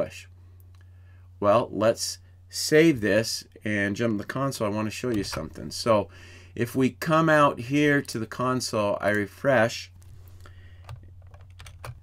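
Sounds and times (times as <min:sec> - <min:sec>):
faint steady low hum: 0:00.0 - 0:12.0
keyboard keystrokes: 0:10.9 - 0:12.0.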